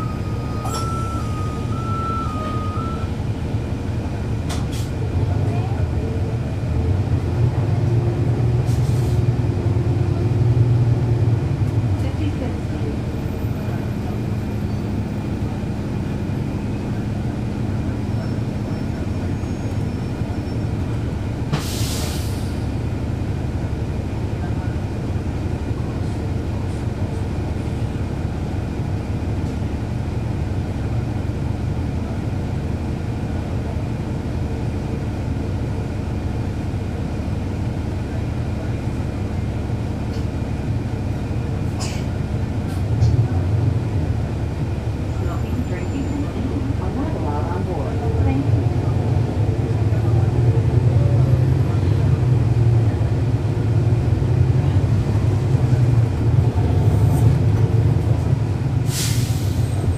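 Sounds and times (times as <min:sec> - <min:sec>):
bus diesel engine droning: 0:00.0 - 0:59.9
short hiss: 0:58.9 - 0:59.6.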